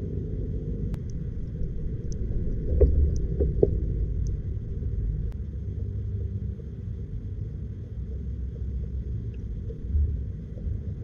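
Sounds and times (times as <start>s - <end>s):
muffled underwater rumble: 0.0s - 11.0s.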